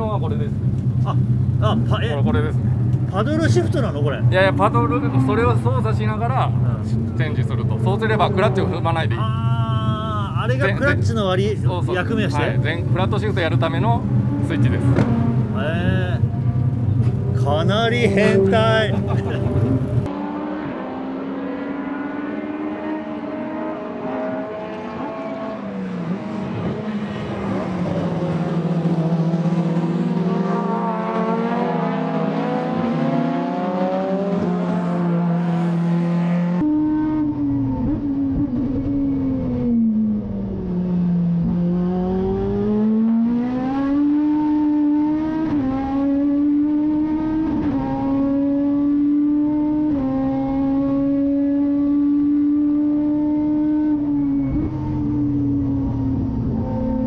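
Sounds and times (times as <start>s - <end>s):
race car engine revving: 0.0s - 57.0s.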